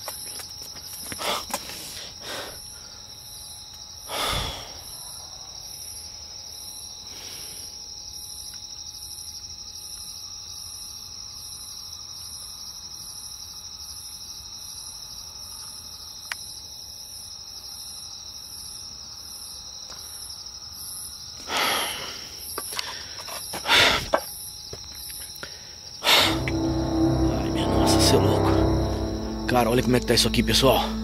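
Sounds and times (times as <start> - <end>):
crickets chirping: 0.0 - 21.4.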